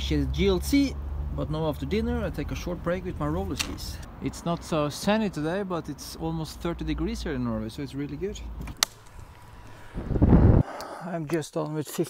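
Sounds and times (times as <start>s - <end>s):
wind buffeting microphone: 9.1s - 10.7s.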